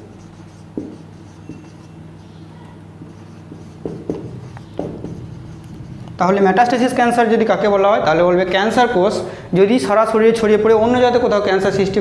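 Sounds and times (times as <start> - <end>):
marker writing on whiteboard: 0.0 - 6.2
marker tip tapping: 3.5 - 5.2.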